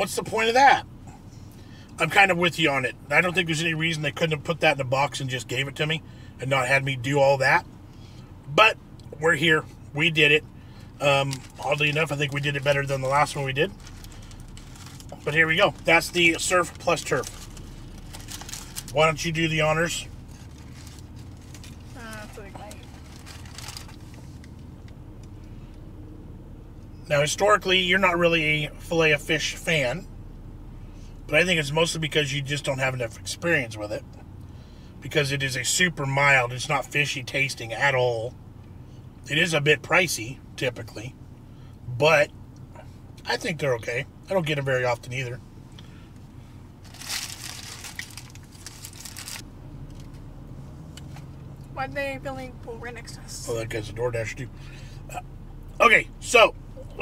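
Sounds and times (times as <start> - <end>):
low rumble inside car: 0.0 - 57.0
paper wrapper crinkling: 13.8 - 15.2, 17.2 - 19.0, 22.8 - 24.2, 46.8 - 49.4.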